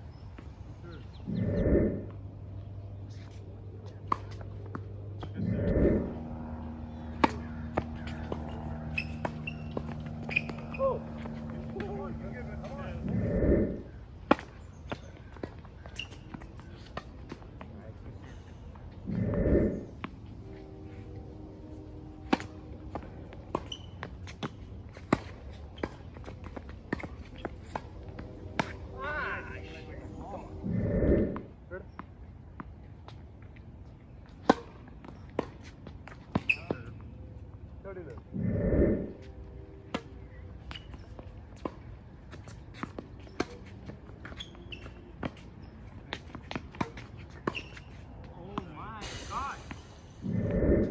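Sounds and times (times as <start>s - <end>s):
steady low hum: 0.0s - 15.3s, 16.6s - 34.3s, 37.1s - 40.6s, 49.7s - 50.9s
low rumbling noise: 0.8s - 8.9s, 9.9s - 14.2s, 18.1s - 23.6s, 27.3s - 31.7s, 37.7s - 40.4s, 49.8s - 50.9s.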